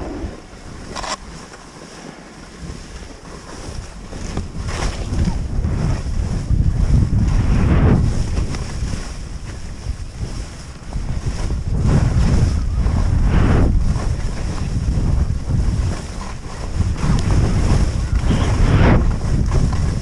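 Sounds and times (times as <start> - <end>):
wind rushing over microphone: 0.0 - 1.5, 2.6 - 20.0
skis scraping through powder: 0.0 - 20.0.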